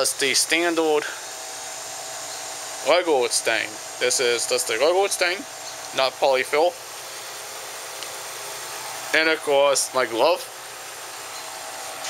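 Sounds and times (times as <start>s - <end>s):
background hum and hiss: 0.0s - 12.0s.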